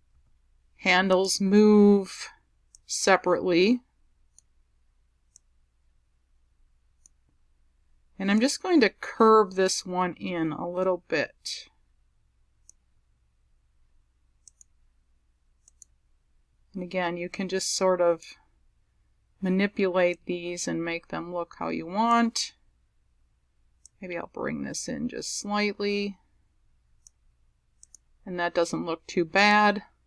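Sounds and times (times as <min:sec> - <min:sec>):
low steady room hum: 0:00.0 - 0:30.0
faint computer mouse clicks: 0:04.3 - 0:04.5, 0:05.3 - 0:05.5, 0:07.0 - 0:07.2, 0:12.6 - 0:12.8, 0:14.4 - 0:14.8, 0:15.6 - 0:16.0, 0:27.0 - 0:27.2, 0:27.8 - 0:28.1.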